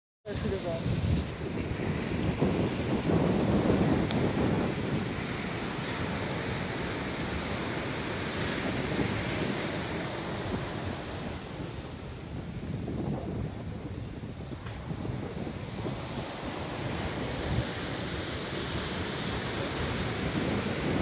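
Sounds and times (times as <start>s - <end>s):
waves breaking on shore: 0.3s - 21.0s.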